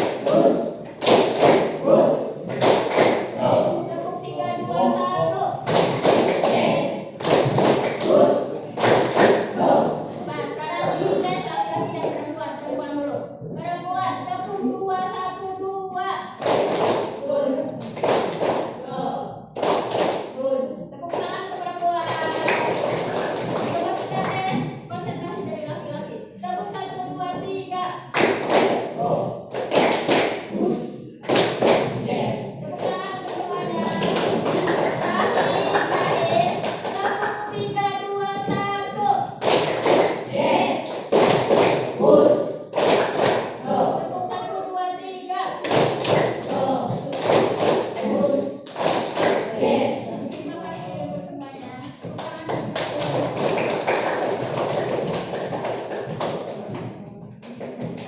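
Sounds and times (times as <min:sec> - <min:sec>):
group clapping in quick strokes: 0:00.0 - 0:03.4, 0:05.6 - 0:09.7, 0:16.3 - 0:18.8, 0:19.6 - 0:20.4, 0:21.1 - 0:24.6, 0:28.1 - 0:32.0, 0:32.8 - 0:37.6, 0:39.4 - 0:43.6, 0:45.6 - 0:46.5, 0:47.1 - 0:50.4, 0:52.1 - 0:58.0
group shouting together: 0:40.3 - 0:40.9.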